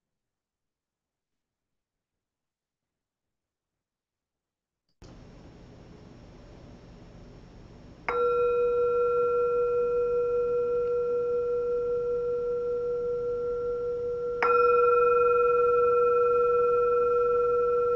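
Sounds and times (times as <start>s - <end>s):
meditation bowl bell ringing: 8.0s - 17.9s.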